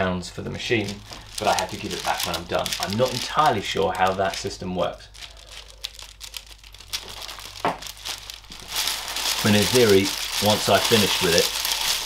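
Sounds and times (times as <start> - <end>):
packing paper crinkling: 0.6 - 12.0.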